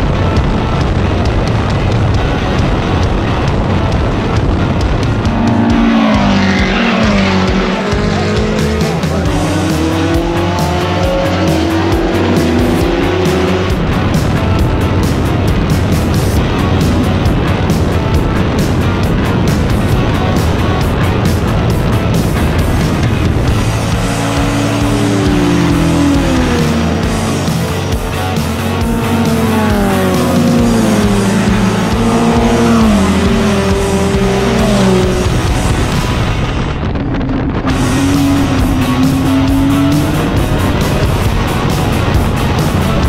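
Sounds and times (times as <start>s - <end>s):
background music with steady beat: 0.0s - 36.3s, 37.6s - 43.0s
race car engines: 0.0s - 43.0s.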